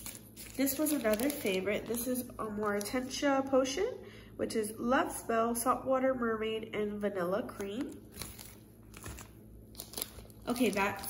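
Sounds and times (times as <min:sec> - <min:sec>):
plastic bag crinkling: 0:00.0 - 0:03.1, 0:07.6 - 0:11.0.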